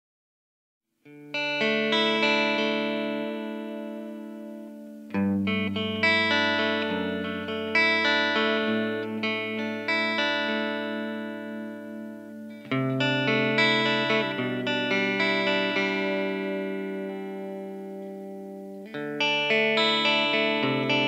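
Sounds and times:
clean electric guitar chords: 0:01.1 - 0:21.0.

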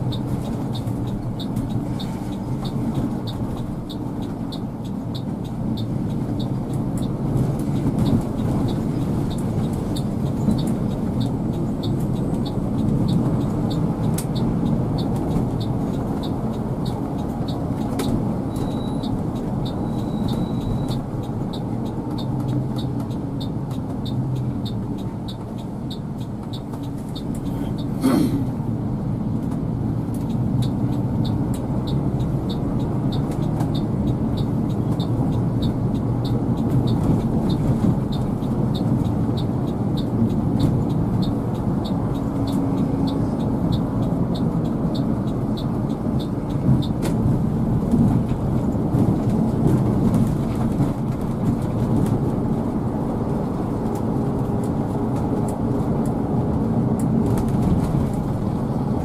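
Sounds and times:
diesel engine and road rumble: 0:00.0 - 0:59.0.

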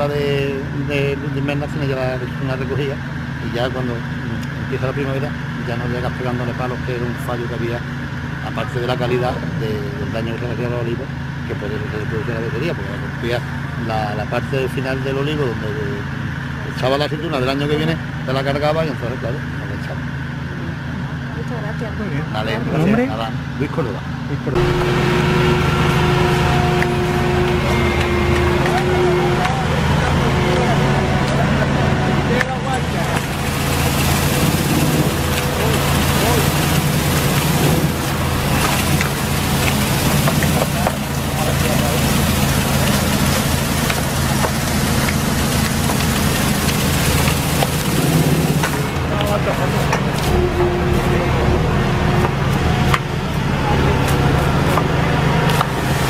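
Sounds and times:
tractor engine drone: 0:00.0 - 0:56.0
steady high tone: 0:24.5 - 0:43.3, 0:48.8 - 0:54.0
tree shaker hissing: 0:32.8 - 0:49.2.

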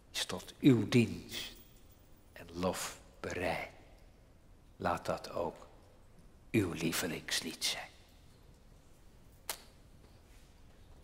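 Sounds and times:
sharp click: 0:09.4 - 0:09.8.

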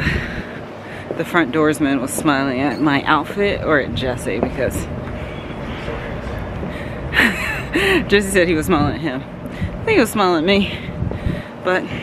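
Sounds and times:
low background rumble: 0:00.0 - 0:12.0
woman's breathy laugh: 0:07.1 - 0:08.1.

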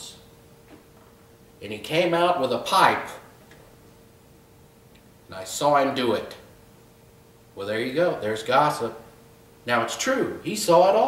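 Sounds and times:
faint steady hum: 0:00.0 - 0:11.0
man speaking: 0:05.3 - 0:06.5, 0:07.6 - 0:11.0.

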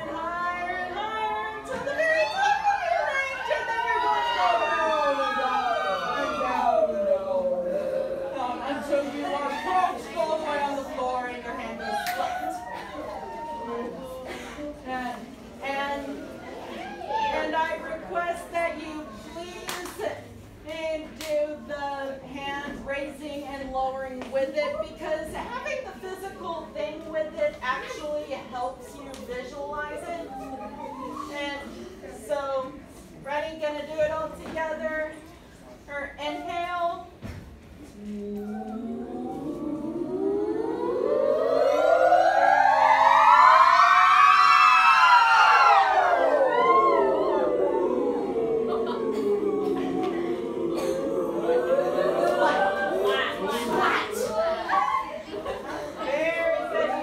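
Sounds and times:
students singing a pitch glide: 0:37.9 - 0:57.0.

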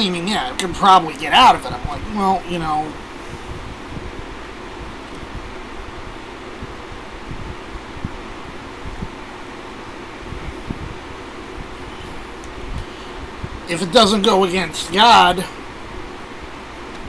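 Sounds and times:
electric fan whirring: 0:00.0 - 0:17.0.

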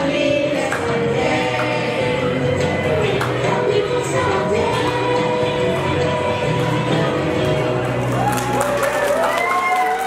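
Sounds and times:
children singing together: 0:00.0 - 0:07.6.

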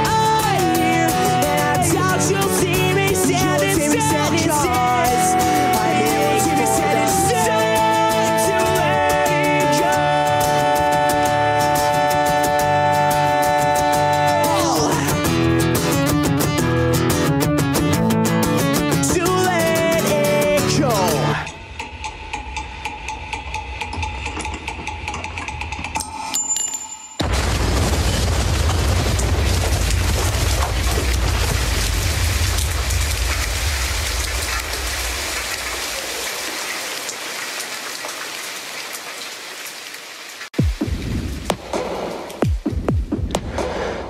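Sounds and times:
song: 0:00.0 - 0:22.8
rain-like noise with deep rumble: 0:29.0 - 0:40.6.

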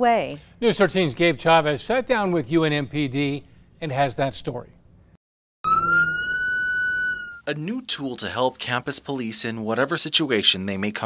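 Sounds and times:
police car siren: 0:05.6 - 0:07.5.

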